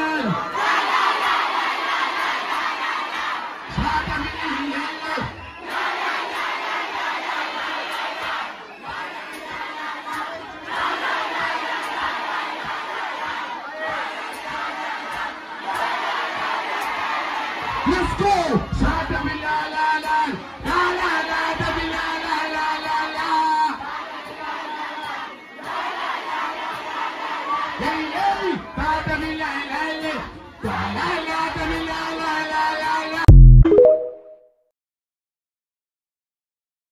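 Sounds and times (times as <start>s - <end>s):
crowd shouting and cheering: 0.0s - 34.4s
short low booms: 33.3s - 33.7s.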